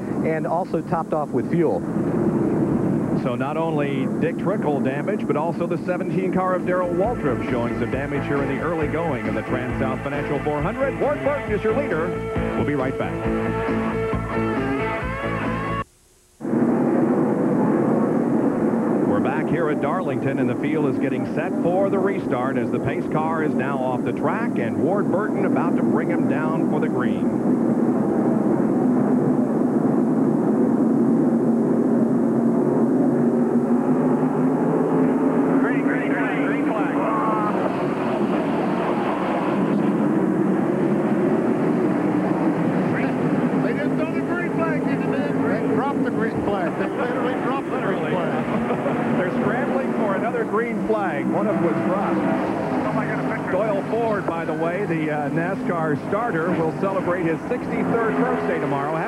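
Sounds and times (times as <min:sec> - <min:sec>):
race car engines passing: 0:04.6 - 0:15.8, 0:33.1 - 0:59.0.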